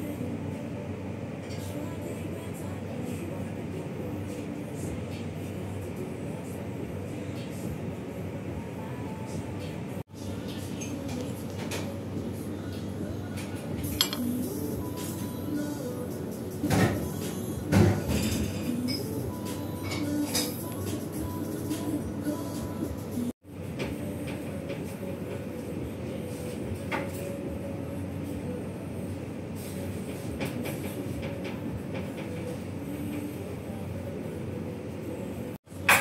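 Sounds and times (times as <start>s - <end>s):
low rumbling room noise: 0.0s - 35.9s
faint background music: 0.0s - 36.0s.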